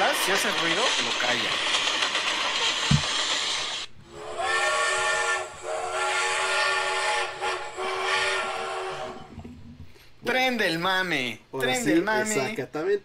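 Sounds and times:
hissing steam: 0:00.0 - 0:09.3
steam locomotive whistle: 0:04.0 - 0:09.4.

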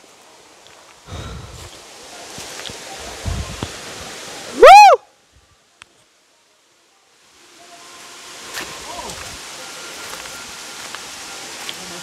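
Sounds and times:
waterfall rushing: 0:00.0 - 0:05.0, 0:07.2 - 0:12.0
loud rising and falling call: 0:04.5 - 0:05.0.

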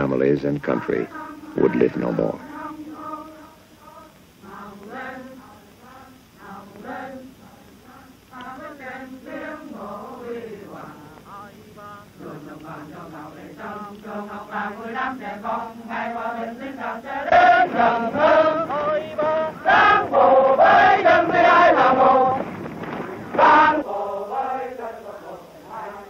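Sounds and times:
soldiers chanting in unison: 0:00.7 - 0:26.0.

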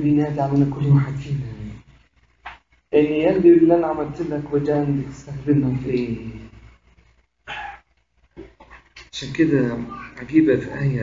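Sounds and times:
faint small noises: 0:00.0 - 0:11.0.

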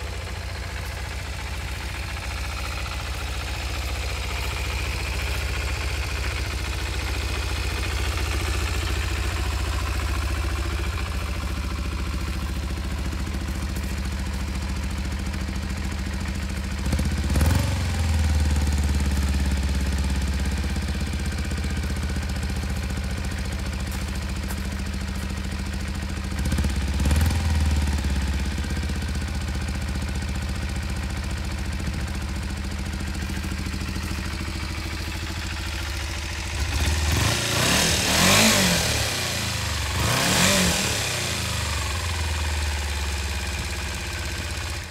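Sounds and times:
motorcycle engine idling: 0:00.0 - 0:44.9
motorcycle engine revving: 0:00.0 - 0:44.9.

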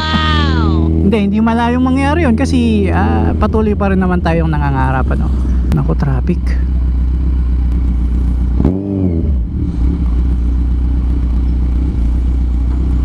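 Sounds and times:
engine revving: 0:00.0 - 0:13.0
motorcycle engine running: 0:00.0 - 0:13.0.

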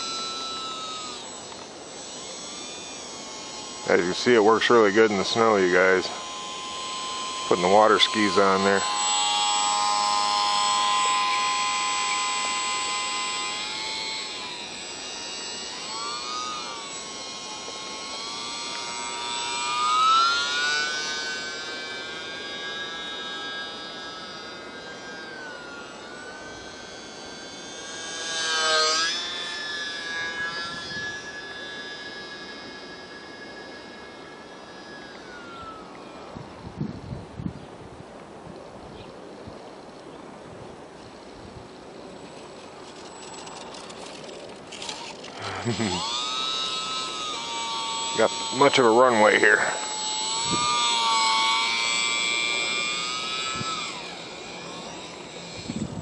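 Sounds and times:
model plane motor whining: 0:00.0 - 0:56.0.

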